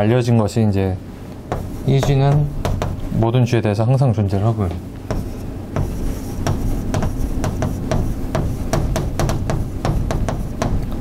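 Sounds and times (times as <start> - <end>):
chalk tapping and scraping on blackboard: 1.5 - 3.1, 5.0 - 11.0.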